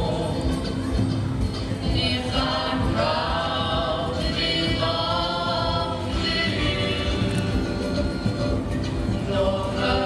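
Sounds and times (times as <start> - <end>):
instrumental backing: 0.0 - 10.0
group singing long notes: 1.8 - 10.0.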